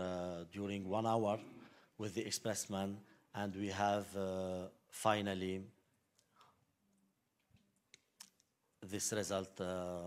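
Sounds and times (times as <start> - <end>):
man speaking: 0.0 - 5.8, 8.8 - 10.0.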